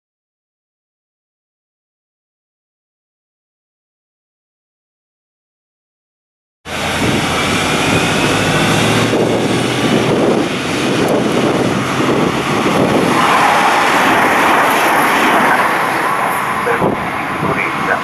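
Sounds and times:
diesel train engines: 6.7 - 18.0
rising whine: 6.7 - 18.0
train wheel and running noise: 6.7 - 18.0.

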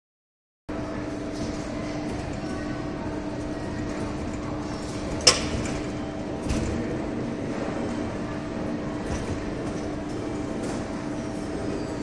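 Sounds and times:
mechanical hum: 0.7 - 12.0.

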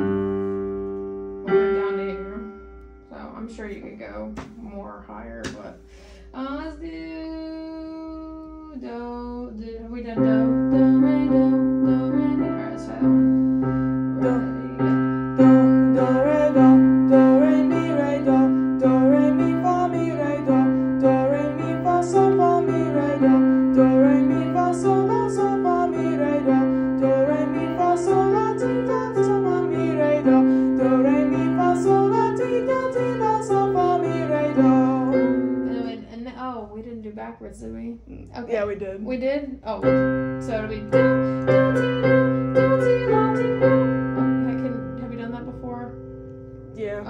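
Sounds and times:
piano playing warm-up exercise: 0.0 - 6.7, 10.0 - 36.7, 39.6 - 47.0
person singing: 9.6 - 13.4, 14.1 - 36.0, 40.9 - 44.9.

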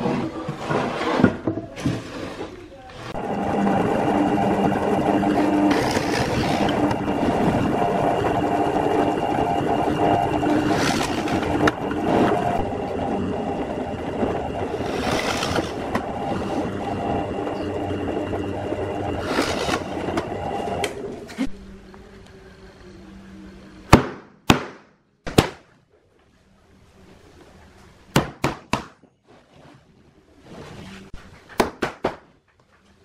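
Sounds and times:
drill press boring through wood: 3.0 - 13.0, 14.2 - 17.8, 18.4 - 21.0.

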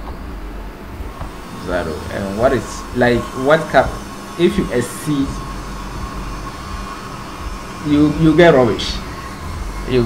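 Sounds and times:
background hum and hiss: 0.0 - 10.0
low drone: 0.0 - 10.0.

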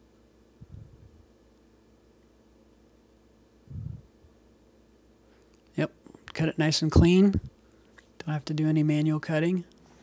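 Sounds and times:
low hum: 0.6 - 1.4, 3.6 - 4.4.

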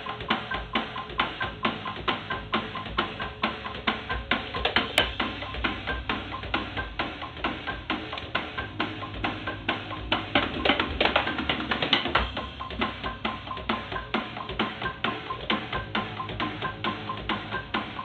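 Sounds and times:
electronic drum kit beat: 0.0 - 18.0.

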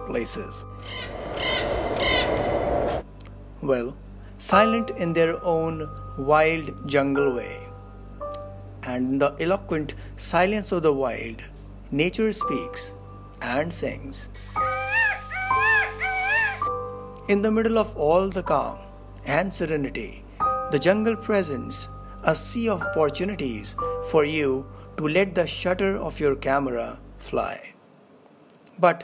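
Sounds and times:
steady background hiss: 0.0 - 14.8, 16.5 - 29.0
background music: 0.0 - 27.6
bird calling: 0.8 - 2.8, 14.4 - 16.7.

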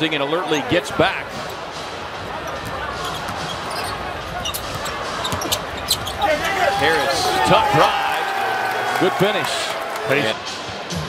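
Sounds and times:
crowd murmur: 0.5 - 11.0
basketball dribbling: 2.5 - 6.5
shoe squeaks and knocks: 3.0 - 7.0.

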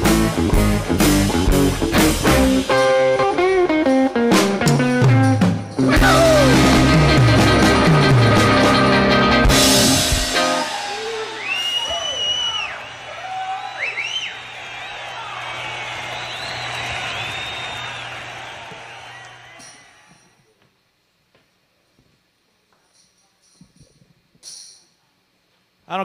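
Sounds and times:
rock band final chord: 0.0 - 11.3
crowd whooping and yelling: 5.9 - 7.7, 10.1 - 20.4.

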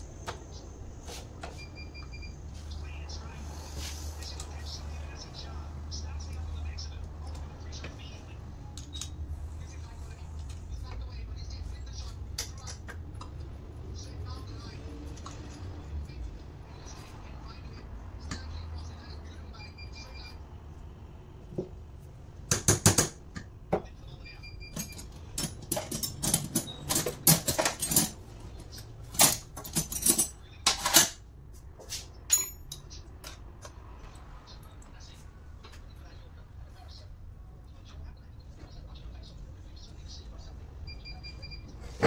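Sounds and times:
small metal parts clinking: 24.8 - 28.2, 29.1 - 31.2, 32.3 - 32.8.

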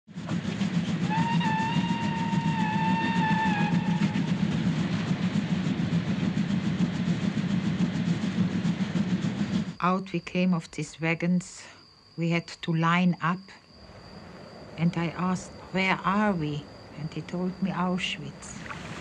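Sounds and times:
steam locomotive running: 0.1 - 13.3, 13.9 - 18.6
locomotive whistle blast: 1.1 - 4.4.

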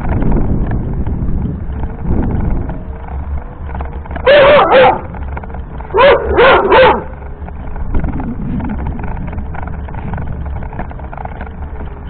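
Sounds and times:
wheelchair rolling on paving stones: 0.0 - 12.0
small dog barking: 4.2 - 5.1, 5.9 - 7.1.

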